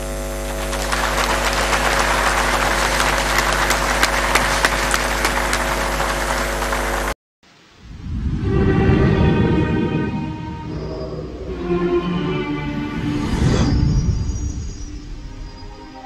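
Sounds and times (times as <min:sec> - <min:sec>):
electrical mains hum: 0:00.0 - 0:08.4
audience applauding: 0:00.4 - 0:07.2.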